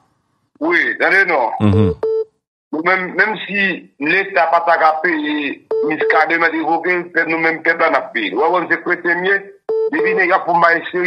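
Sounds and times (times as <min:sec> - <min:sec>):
voice over telephone line: 0:04.2 - 0:11.0.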